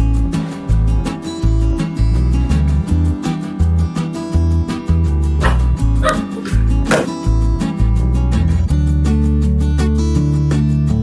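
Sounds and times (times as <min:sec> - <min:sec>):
guitar music: 0:00.0 - 0:11.0
small dog yipping: 0:05.4 - 0:07.1.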